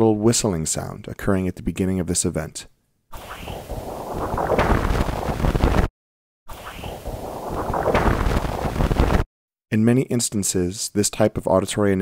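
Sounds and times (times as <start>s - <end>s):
noisy rushing sound: 3.2s - 5.9s, 6.5s - 9.2s
percussive thud: 4.6s - 5.9s, 7.8s - 9.2s.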